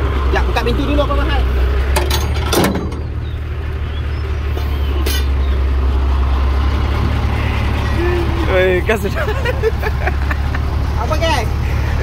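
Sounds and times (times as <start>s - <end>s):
lorry engine idling: 0.0s - 12.0s
metallic tailgate latch clank: 2.0s - 3.1s.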